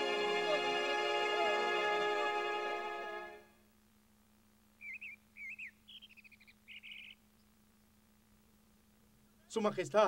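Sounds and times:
bird chirps and twittering: 4.8s - 7.5s.

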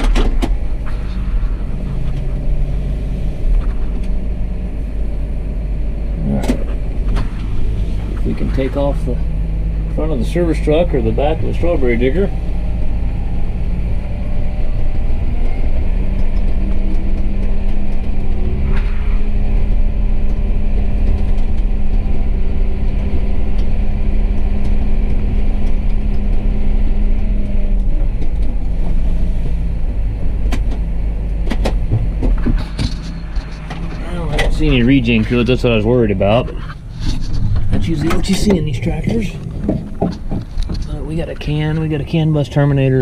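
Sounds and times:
tractor diesel engine running: 0.0s - 43.0s.

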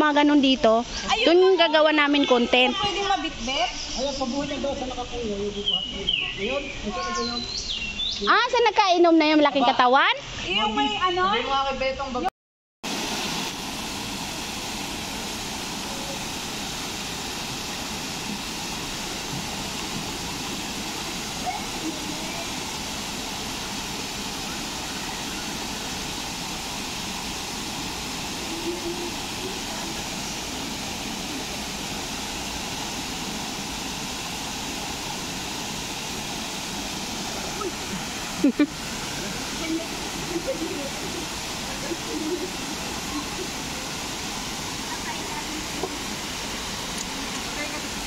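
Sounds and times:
river water rushing over weir: 12.9s - 48.0s.

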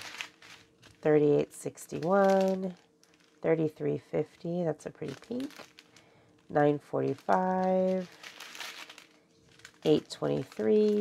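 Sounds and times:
plastic bags crinkling: 0.0s - 1.1s, 1.7s - 3.5s, 5.0s - 11.0s.

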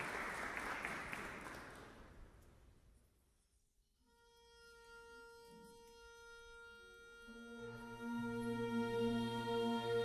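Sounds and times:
lower held orchestral notes: 4.0s - 10.0s.

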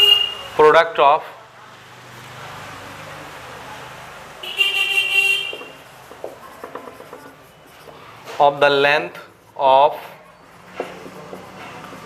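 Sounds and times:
vehicle horn: 0.0s - 0.5s, 4.4s - 5.8s
faint traffic hum: 0.0s - 12.0s
marker writing on whiteboard: 5.2s - 12.0s.

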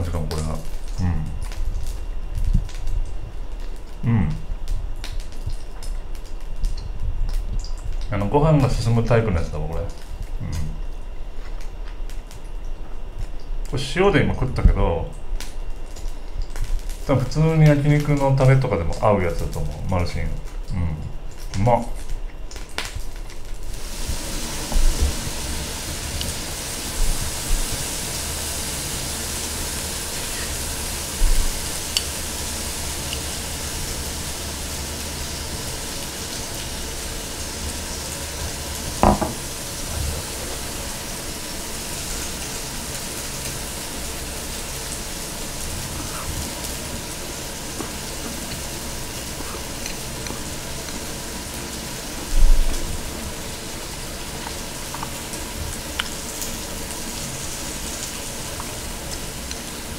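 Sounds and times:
meat sizzling on a grill plate: 22.6s - 59.9s
chopsticks knocking on bowl: 39.0s - 39.4s.

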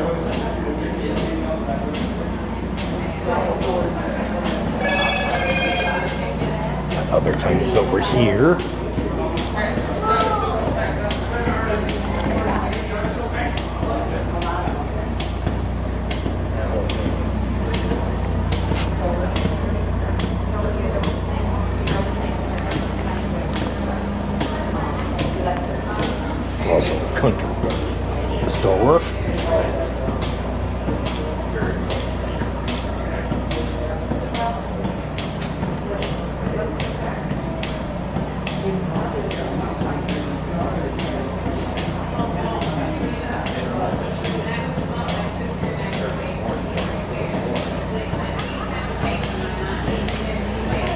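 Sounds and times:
indistinct voices talking: 0.0s - 50.9s
steady low hum: 0.0s - 50.9s.

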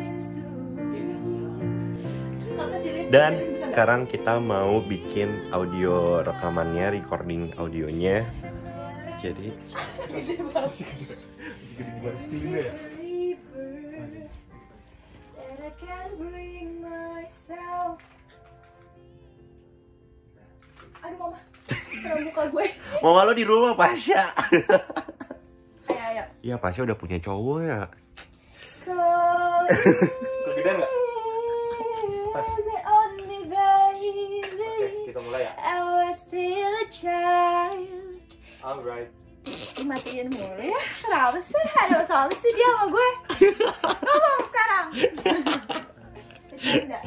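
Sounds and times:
woman singing: 0.0s - 11.2s, 11.8s - 14.6s, 15.3s - 20.1s, 28.8s - 38.4s
soft music: 0.0s - 47.0s.

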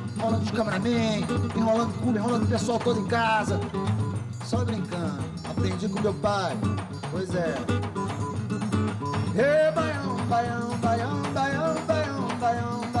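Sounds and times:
person singing: 0.0s - 6.2s, 9.3s - 13.0s
acoustic guitar strummed: 0.0s - 13.0s.

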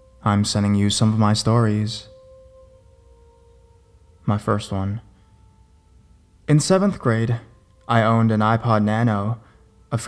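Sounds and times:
faint droning background music: 0.0s - 10.0s.

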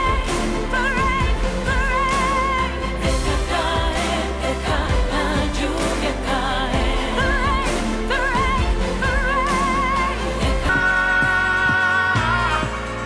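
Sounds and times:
pop band backing: 0.0s - 13.0s.

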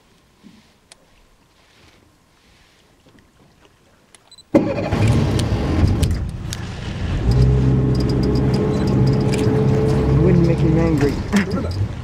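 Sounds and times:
boat engine starting and droning: 4.5s - 12.0s.

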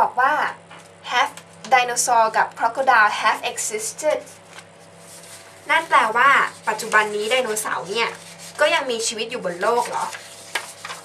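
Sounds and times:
woman speaking: 0.0s - 4.4s, 5.6s - 10.2s.

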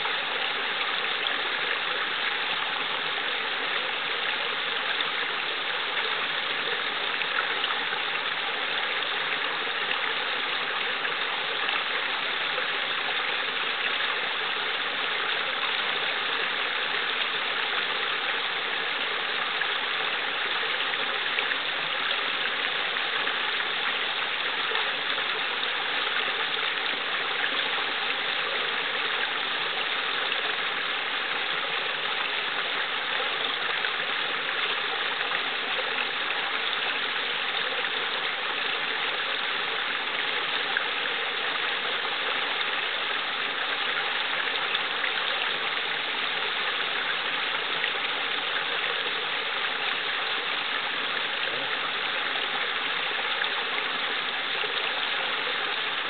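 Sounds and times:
brook babbling over rocks: 0.0s - 56.0s.

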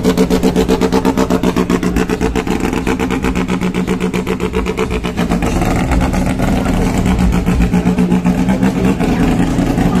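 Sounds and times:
car engine running at low revs: 0.0s - 10.0s.

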